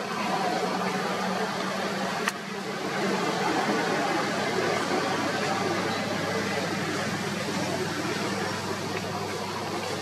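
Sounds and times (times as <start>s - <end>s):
rushing background noise: 0.0s - 10.0s.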